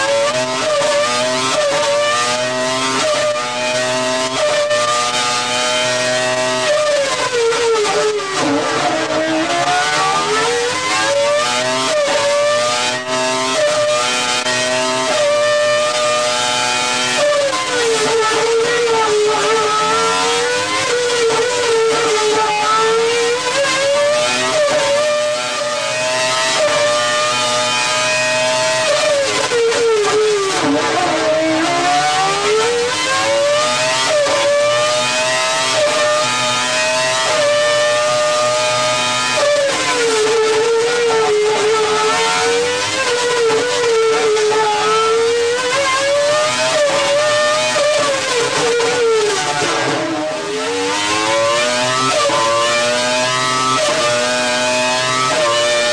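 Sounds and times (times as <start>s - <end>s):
racing engine at high revs: 0.0s - 55.9s.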